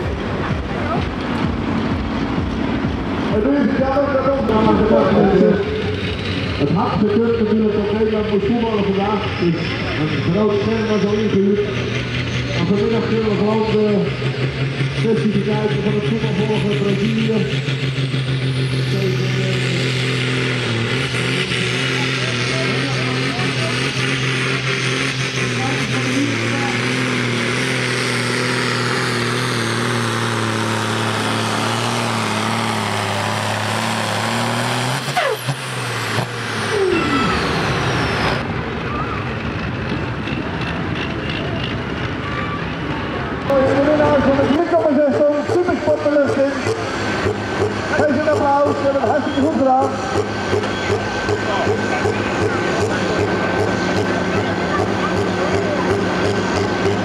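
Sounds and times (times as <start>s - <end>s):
people's voices: 0.0s - 27.4s, 36.2s - 57.0s
tractor engine droning: 0.0s - 57.0s.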